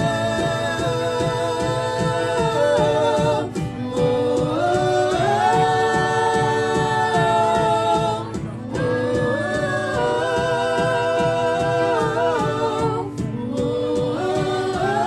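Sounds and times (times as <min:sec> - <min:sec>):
voices singing together: 0:00.0 - 0:15.0
worship band playing: 0:00.0 - 0:15.0.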